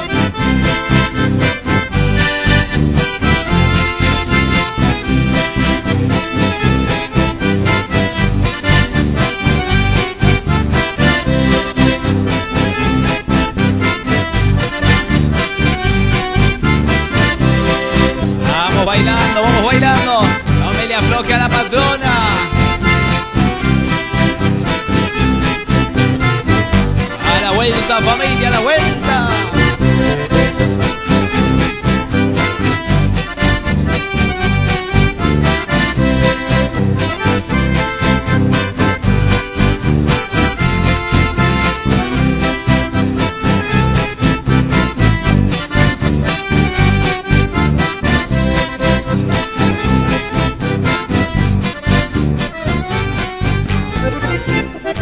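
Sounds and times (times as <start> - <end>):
accordion-led folk waltz: 0.0 - 55.0.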